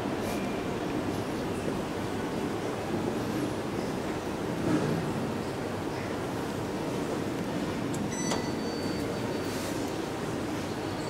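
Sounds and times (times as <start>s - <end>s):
indoor lobby hum: 0.0s - 11.0s
elevator chime ding: 8.1s - 9.8s.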